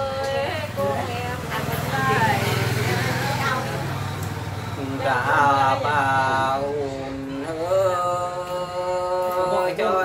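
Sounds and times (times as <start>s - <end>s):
woman singing folk song: 0.0s - 3.9s.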